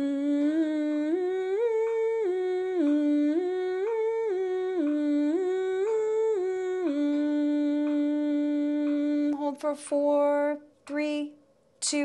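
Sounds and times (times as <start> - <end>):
woman humming vocal warm-up: 0.0 - 12.0.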